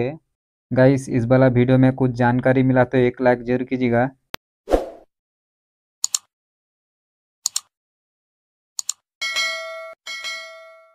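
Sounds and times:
sharp click: 0:06.0 - 0:06.3, 0:07.4 - 0:07.7, 0:08.8 - 0:09.0.

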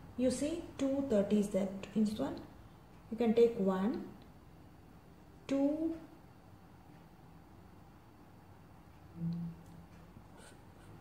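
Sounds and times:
person humming: 0:09.2 - 0:09.6
marker writing on paper: 0:10.3 - 0:11.0.

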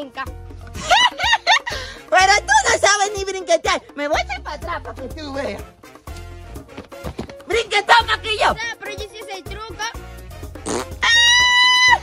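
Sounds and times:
light background music: 0:00.0 - 0:12.0
fart sound effect: 0:10.6 - 0:11.1.

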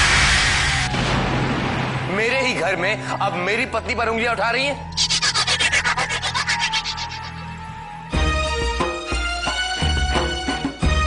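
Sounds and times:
fast swishing strokes: 0:05.0 - 0:07.6.

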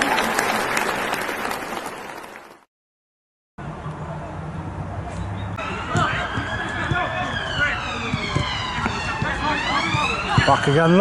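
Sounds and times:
siren wailing: 0:05.6 - 0:11.0.

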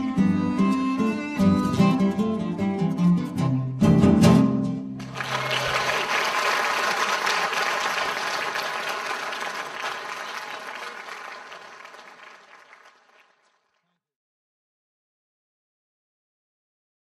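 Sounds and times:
audience applause: 0:05.0 - 0:13.8.

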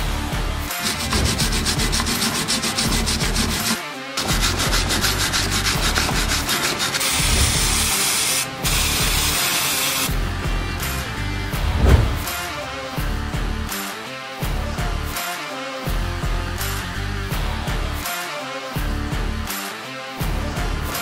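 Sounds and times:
background music: 0:00.0 - 0:21.0
wire brush scrubbing metal: 0:00.7 - 0:10.1
aerosol spray hissing: 0:06.6 - 0:10.1.

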